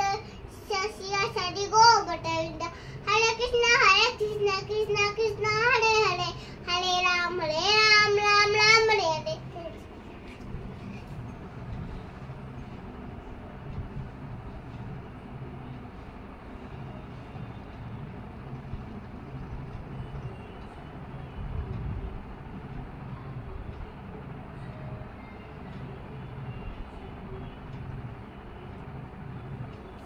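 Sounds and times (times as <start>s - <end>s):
low rumble with faint hum: 0.0s - 30.0s.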